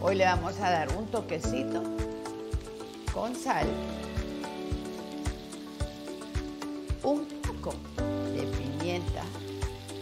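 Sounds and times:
background music with steady beat: 0.0s - 10.0s
fruit sizzling in a frying pan: 0.0s - 10.0s.

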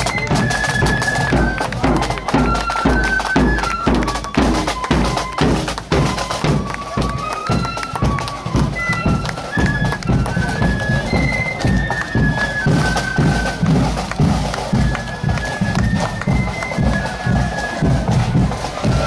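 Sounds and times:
bass and side drums beat: 0.0s - 19.0s
flutes playing in unison: 0.0s - 19.0s.

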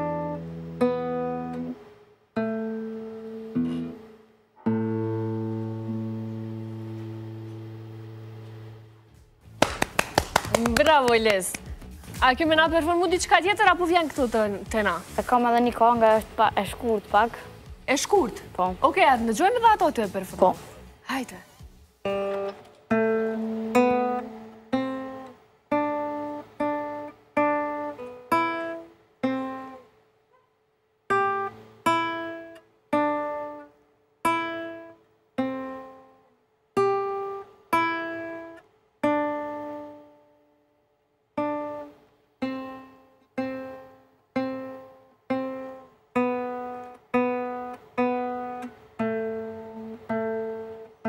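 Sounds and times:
classical guitar chord ringing: 0.0s - 9.1s, 22.0s - 29.9s, 31.1s - 40.7s, 41.3s - 51.0s
hand clapping: 9.5s - 12.0s.

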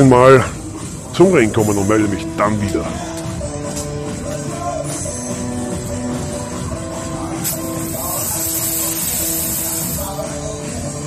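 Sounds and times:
wrestling entrance music: 0.0s - 8.1s
fog machine hissing: 7.4s - 10.2s.

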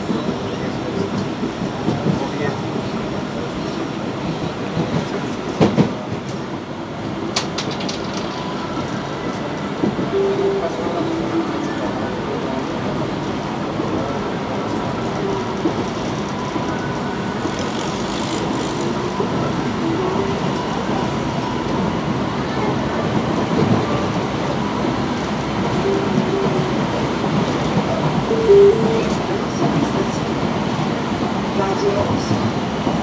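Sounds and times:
train wheels rumbling on rail: 0.0s - 33.0s.

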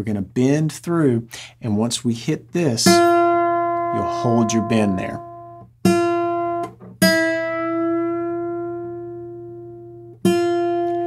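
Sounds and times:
acoustic guitar note plucked and bent: 2.9s - 11.0s.

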